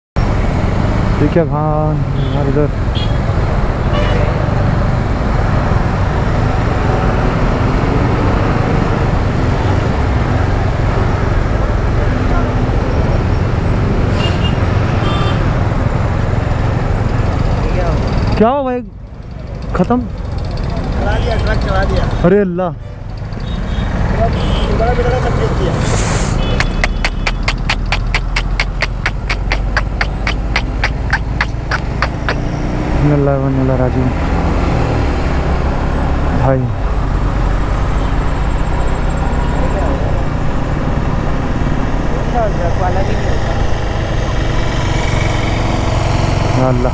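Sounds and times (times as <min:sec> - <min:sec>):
motorcycle engines and road rumble: 0:00.2 - 0:46.9
horn toots: 0:25.8 - 0:32.5
rapid even clicking: 0:26.5 - 0:32.5.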